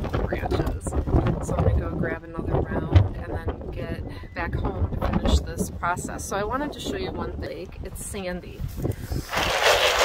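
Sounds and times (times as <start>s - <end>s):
wind buffeting microphone: 0.0s - 10.0s
woman speaking: 0.1s - 8.7s.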